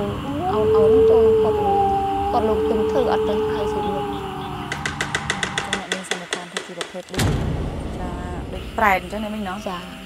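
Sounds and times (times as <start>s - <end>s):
rapid sharp clicks: 4.7s - 7.2s.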